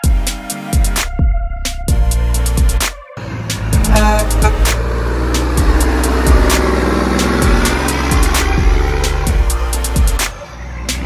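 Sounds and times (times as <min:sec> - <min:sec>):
electronic drum beat music: 0:00.0 - 0:11.0
truck engine driving past: 0:03.2 - 0:11.0.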